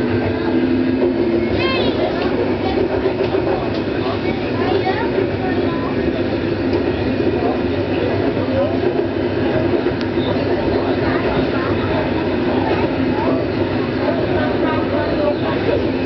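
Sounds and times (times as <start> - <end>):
railcar running on track: 0.0 - 16.0.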